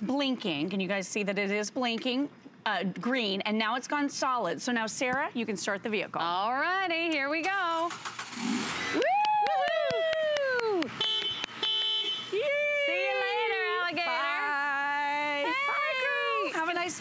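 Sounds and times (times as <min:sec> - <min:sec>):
women whooping and cheering: 0:08.9 - 0:10.9, 0:12.3 - 0:16.6
horn-like beeps: 0:11.0 - 0:12.3.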